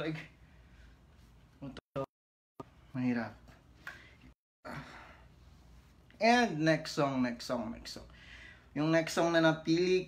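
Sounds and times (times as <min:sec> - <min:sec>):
man breathing and sighing: 0:03.8 - 0:05.6.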